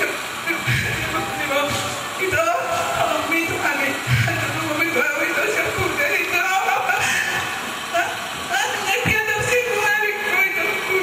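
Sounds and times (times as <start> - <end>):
woman speaking tearfully into microphone: 0.5 - 7.0, 7.9 - 11.0.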